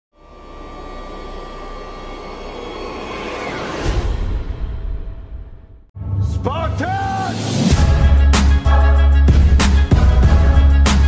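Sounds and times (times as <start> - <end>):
low drone: 0.1 - 4.9
steady high tone: 0.2 - 4.3.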